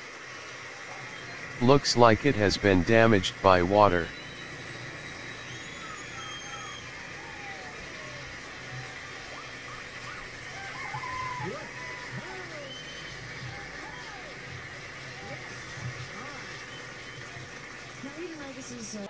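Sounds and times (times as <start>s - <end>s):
low hiss and hum: 0.0s - 19.0s
distant voices: 1.4s - 19.0s.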